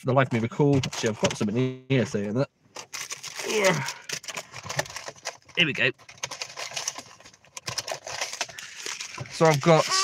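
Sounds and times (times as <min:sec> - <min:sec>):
paper packets rustling: 0:00.3 - 0:10.0.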